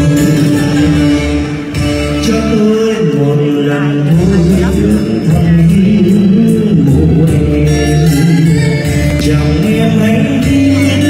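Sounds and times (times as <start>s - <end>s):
bass line: 0.0s - 11.0s
live guitar music: 0.0s - 11.0s.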